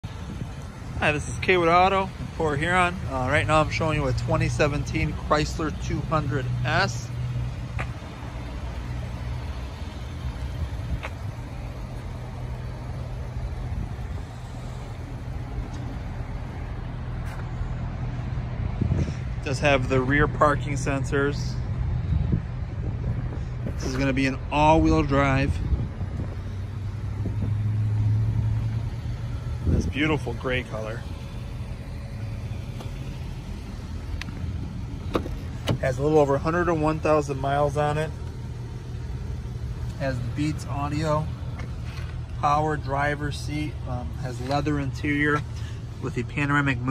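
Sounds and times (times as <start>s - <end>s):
car engine idling: 0.0s - 46.9s
outdoor background noise: 0.0s - 46.9s.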